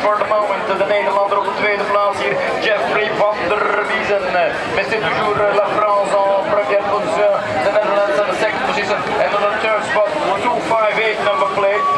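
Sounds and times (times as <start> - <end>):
voices talking and calling out: 0.0 - 11.9.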